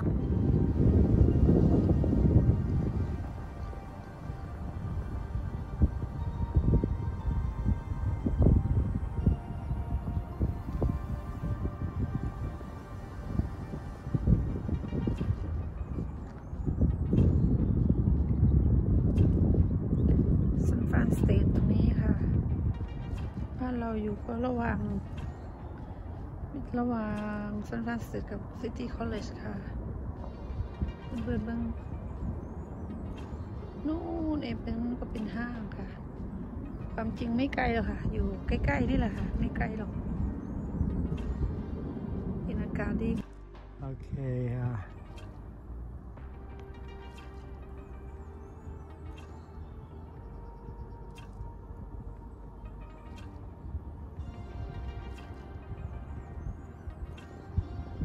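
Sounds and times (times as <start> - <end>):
faint background music: 0.0 - 58.0
wind buffeting microphone: 0.0 - 58.0.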